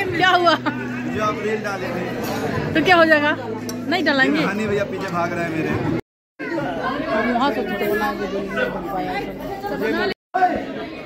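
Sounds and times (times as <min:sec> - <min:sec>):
people chatting in a hall: 0:00.0 - 0:11.0.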